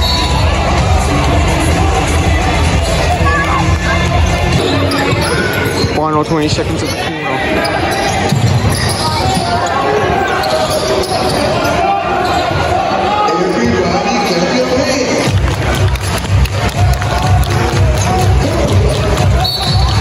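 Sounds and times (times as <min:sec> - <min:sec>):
crowd voices: 0:00.0 - 0:20.0
players' footwork: 0:15.2 - 0:20.0
basketball dribbling: 0:15.3 - 0:20.0.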